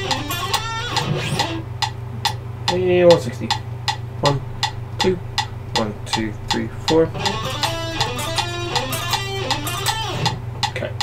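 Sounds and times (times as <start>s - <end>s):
electric guitar fast picked run: 0.0s - 1.7s, 7.1s - 10.4s
metronome clicks: 0.0s - 10.9s.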